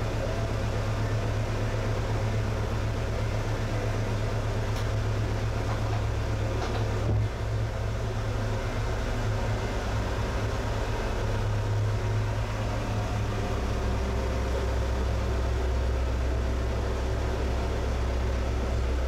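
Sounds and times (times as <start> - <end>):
boat engine hum: 0.0 - 19.0.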